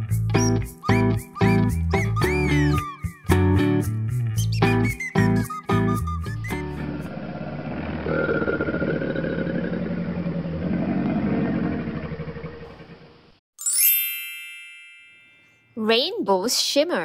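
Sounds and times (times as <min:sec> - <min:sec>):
bright chime ringing: 0:13.6 - 0:16.0.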